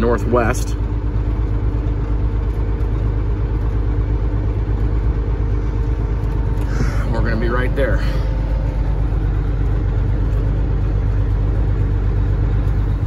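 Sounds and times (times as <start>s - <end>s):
truck diesel engine droning: 0.0s - 13.0s.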